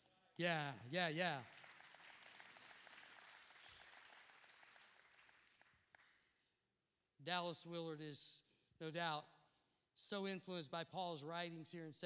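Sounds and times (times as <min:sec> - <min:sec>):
faint applause: 0:01.0 - 0:06.1.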